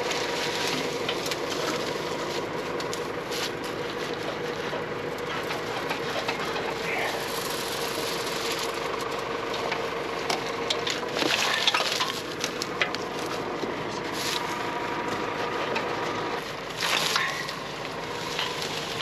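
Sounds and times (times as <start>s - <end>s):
dry stems crackling: 0.0s - 19.0s
machine engine idling: 0.0s - 19.0s.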